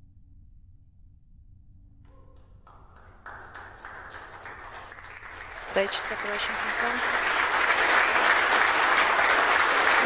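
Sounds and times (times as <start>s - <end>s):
faint low hum: 0.0s - 7.5s
applause: 2.6s - 10.0s.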